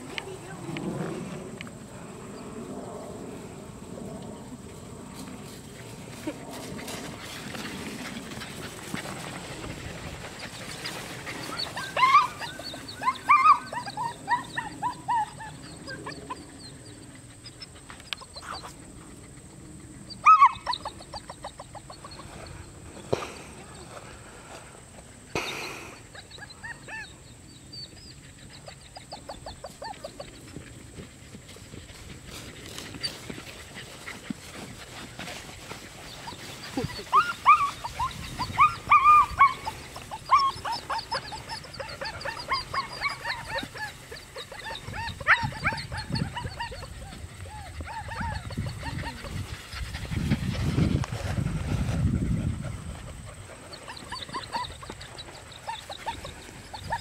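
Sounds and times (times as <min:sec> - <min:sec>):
puppies yapping: 0:07.2 - 0:22.6, 0:25.4 - 0:30.5, 0:31.6 - 0:50.8, 0:52.9 - 0:57.0.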